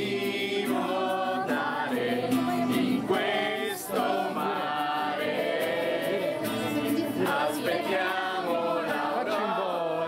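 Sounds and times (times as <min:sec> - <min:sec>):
group of people singing: 0:00.0 - 0:10.0
music: 0:00.0 - 0:10.0.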